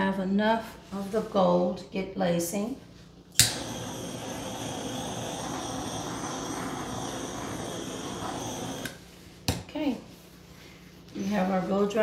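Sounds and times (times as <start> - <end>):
hair dryer switch click: 3.4 - 3.7
hair dryer blowing: 3.4 - 9.0.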